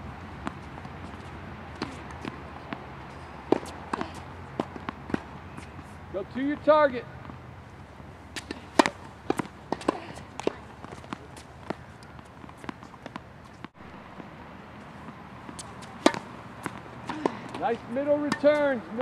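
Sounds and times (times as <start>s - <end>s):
tennis balls struck by rackets: 0.2s - 14.3s, 14.9s - 19.0s
balls bouncing on hard court: 8.4s - 13.7s, 15.0s - 19.0s.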